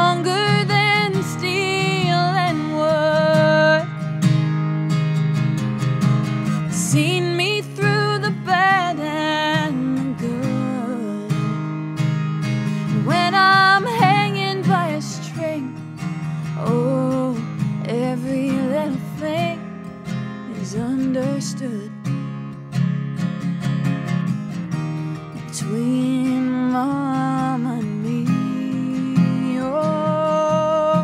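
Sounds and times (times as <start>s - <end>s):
woman singing: 0.0s - 4.2s, 6.4s - 11.9s, 12.8s - 22.3s, 25.4s - 31.0s
acoustic guitar strumming: 0.0s - 31.0s.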